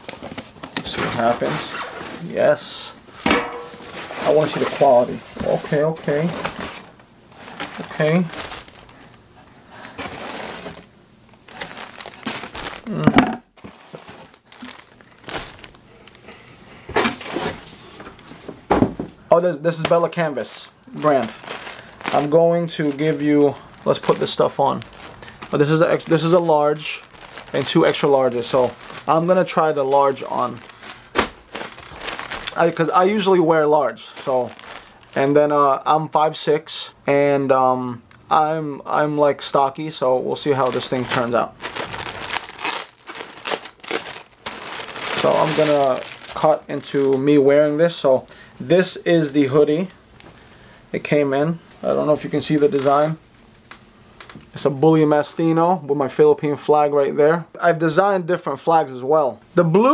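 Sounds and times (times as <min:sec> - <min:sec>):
plastic bags rustling: 0:03.6 - 0:16.4, 0:19.7 - 0:35.7, 0:39.4 - 0:48.1, 0:51.8 - 0:54.4
packaging crinkling: 0:03.7 - 0:09.2, 0:09.8 - 0:16.2, 0:19.8 - 0:33.3, 0:34.0 - 0:35.3, 0:40.4 - 0:47.4, 0:52.1 - 0:54.4.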